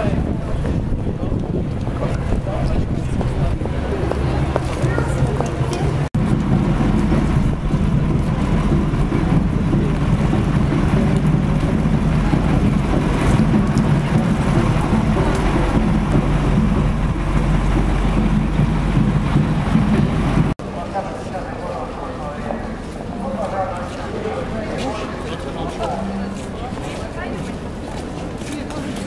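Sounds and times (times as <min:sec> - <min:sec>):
wind buffeting microphone: 0:00.0 - 0:20.6
indistinct street voices: 0:00.0 - 0:29.0.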